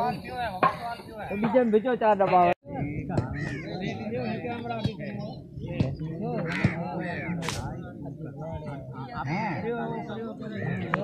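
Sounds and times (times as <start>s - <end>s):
men chattering: 0.0s - 11.0s.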